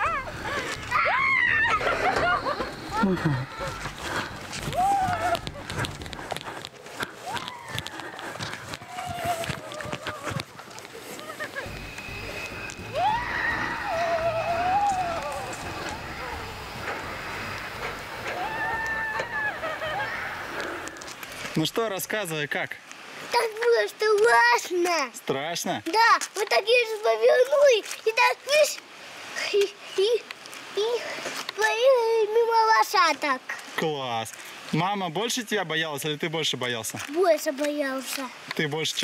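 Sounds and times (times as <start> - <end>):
riders shrieking: 0.0 - 5.6, 7.2 - 21.0
sled rumbling on steel track: 11.7 - 20.9.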